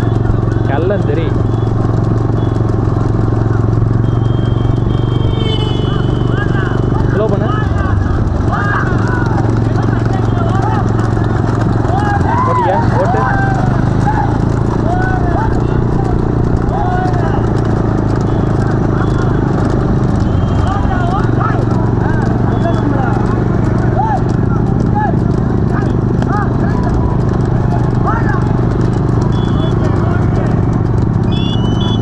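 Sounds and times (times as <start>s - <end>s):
hooves clattering on asphalt: 0.0s - 32.0s
motorcycle engines humming: 0.0s - 32.0s
men shouting: 2.5s - 30.6s.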